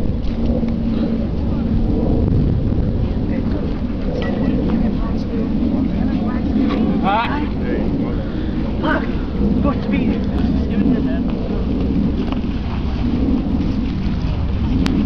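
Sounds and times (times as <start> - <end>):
wind buffeting microphone: 0.0 - 15.0
people talking: 0.9 - 2.2, 3.0 - 11.4.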